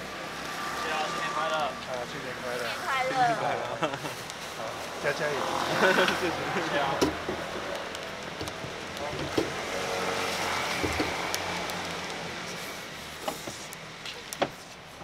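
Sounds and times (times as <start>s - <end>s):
tyre noise on wet road: 0.0s - 15.0s
laughter: 3.7s - 4.2s, 5.7s - 6.2s.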